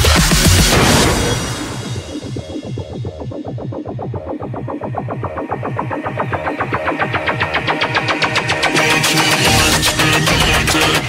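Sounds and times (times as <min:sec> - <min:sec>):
electronic music with fast pulse: 0:00.0 - 0:11.0.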